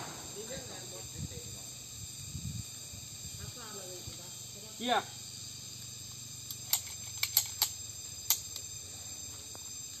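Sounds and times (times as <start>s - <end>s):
sharp pistol shots: 0.0s - 0.4s.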